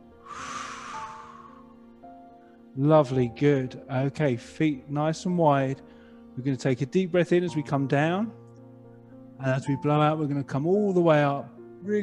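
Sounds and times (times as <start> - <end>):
soft background music: 0.0 - 12.0
man blowing out breath: 0.2 - 2.7.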